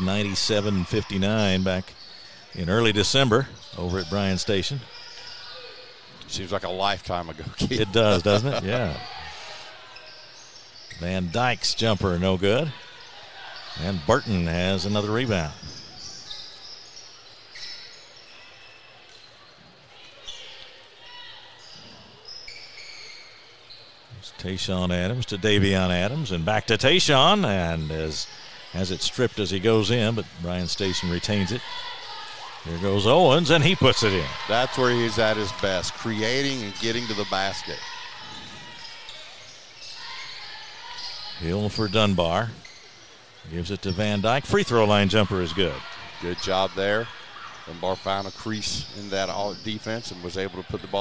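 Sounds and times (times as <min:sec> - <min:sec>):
murmur of voices: 0:00.0 - 0:22.4, 0:24.0 - 0:51.0
sneakers squeaking on hardwood: 0:07.3 - 0:20.8, 0:21.5 - 0:24.1, 0:29.8 - 0:51.0
crowd murmur: 0:07.4 - 0:10.3, 0:31.0 - 0:39.5.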